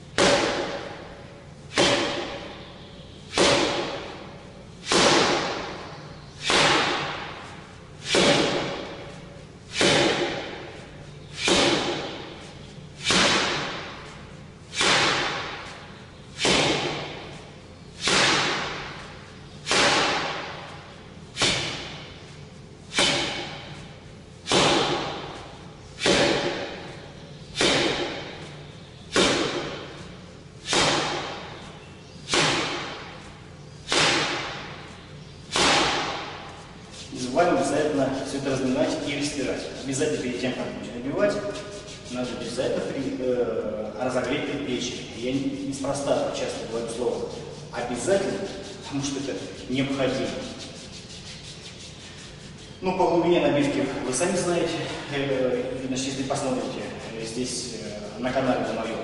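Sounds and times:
ringing forearm strikes on metal: 0:01.8 - 0:02.5, 0:23.0 - 0:23.6, 0:27.6 - 0:28.3.

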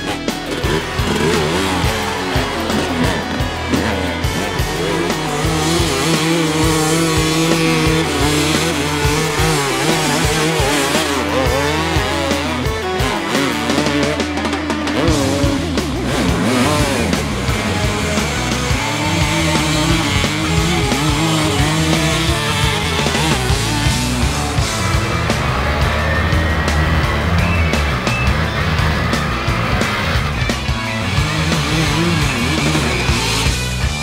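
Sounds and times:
background music with a beat: 0:00.0 - 0:34.0.

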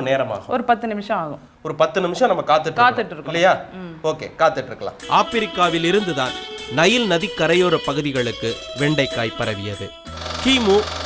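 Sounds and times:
person speaking over music: 0:05.0 - 0:11.0.

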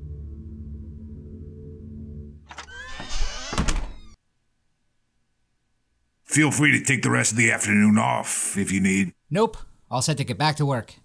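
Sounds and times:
low droning music: 0:00.0 - 0:02.5.

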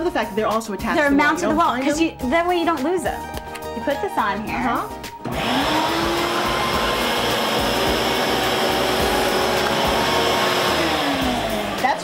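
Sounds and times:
wet-dry vac running: 0:05.2 - 0:12.0.

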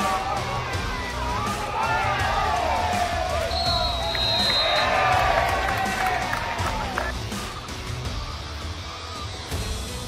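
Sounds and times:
umpire's whistle blast: 0:03.5 - 0:04.9.

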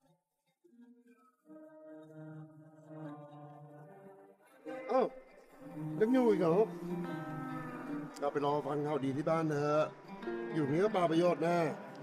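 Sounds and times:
soft background music: 0:00.6 - 0:12.0
man speaking: 0:06.0 - 0:06.7, 0:08.2 - 0:12.0.

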